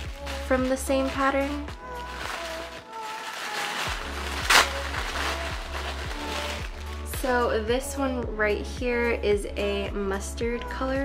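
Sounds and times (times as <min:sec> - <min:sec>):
tissue paper rustling and crinkling: 0:00.0 - 0:07.4
background music with bass beat: 0:03.9 - 0:11.0.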